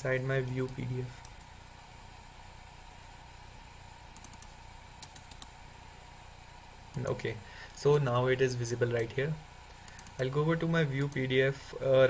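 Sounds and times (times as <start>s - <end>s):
low steady hum: 0.0s - 12.0s
keyboard and mouse clicks: 4.2s - 5.5s, 9.8s - 10.2s.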